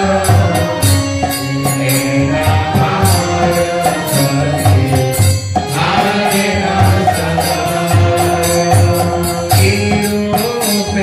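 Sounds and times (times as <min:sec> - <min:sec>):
bright percussion strikes: 0:00.0 - 0:11.0
devotional chanting with music: 0:00.0 - 0:11.0.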